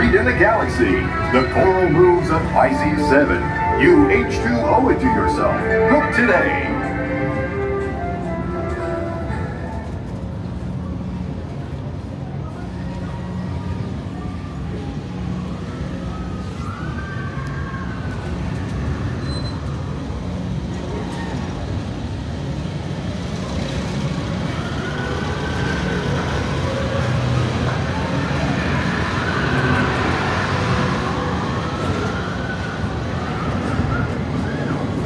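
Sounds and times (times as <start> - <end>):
ride vehicle humming on track: 0.0 - 35.0.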